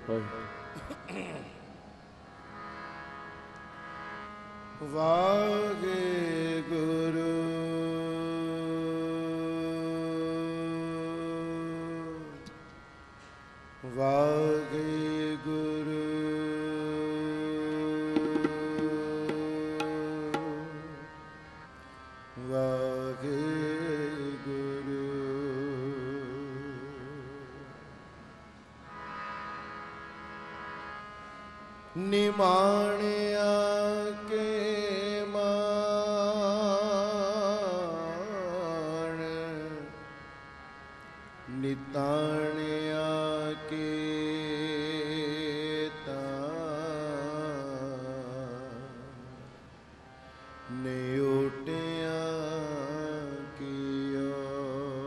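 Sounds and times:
harmonium accompaniment: 0:00.0 - 0:55.0
man singing a long note: 0:04.8 - 0:12.5, 0:13.8 - 0:21.2, 0:22.4 - 0:27.9, 0:41.5 - 0:49.5, 0:50.7 - 0:55.0
man singing long note: 0:04.8 - 0:12.5, 0:13.8 - 0:21.3.

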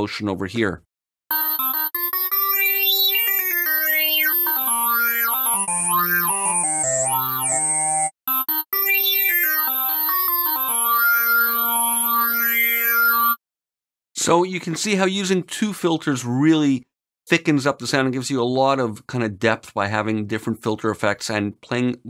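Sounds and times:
filtered synth chords: 0:02.2 - 0:08.1.

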